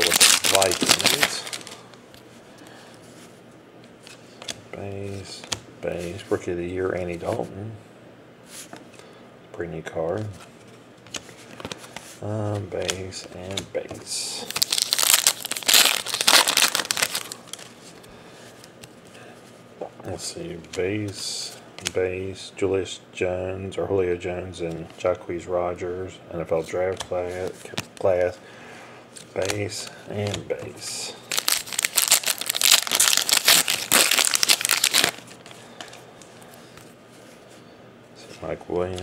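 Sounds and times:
foil wrapper crinkling: 0:00.0 - 0:01.8, 0:14.4 - 0:17.8, 0:31.2 - 0:35.5
wrapper tearing open: 0:00.0 - 0:01.8, 0:14.4 - 0:17.7, 0:31.3 - 0:35.3.

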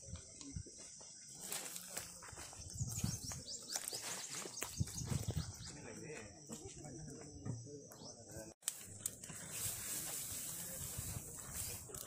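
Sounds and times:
insects chirring: 0:00.0 - 0:12.0
faint men talking: 0:05.3 - 0:08.6.

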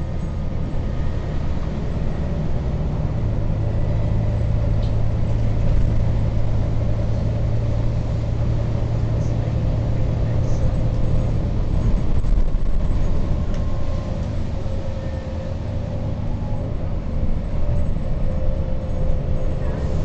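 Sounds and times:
bus engine droning: 0:00.0 - 0:20.0
faint engine whine: 0:00.0 - 0:20.0
road noise: 0:00.0 - 0:20.0.

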